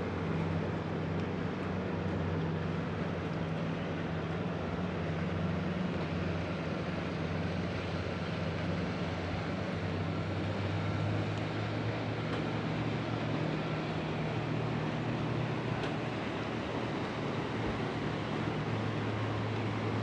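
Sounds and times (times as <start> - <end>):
low motor drone: 0.0 - 20.0.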